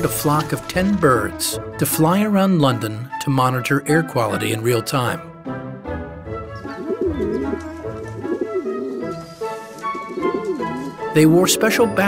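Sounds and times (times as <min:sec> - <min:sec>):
background music: 0:00.0 - 0:12.0
pigeons cooing: 0:06.5 - 0:11.1.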